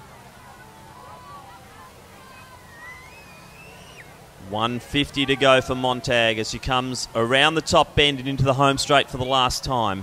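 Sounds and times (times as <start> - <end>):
distant voices: 0.0 - 10.0.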